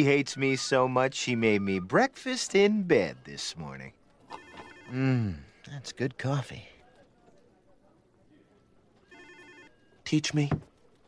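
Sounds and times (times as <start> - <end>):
telephone electronic trill ring: 4.4 - 5.0, 9.1 - 9.9.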